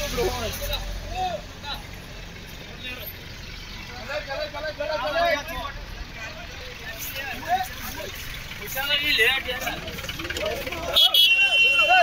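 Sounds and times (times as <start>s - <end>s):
diesel engine rumbling: 0.0s - 12.0s
people talking: 3.8s - 12.0s.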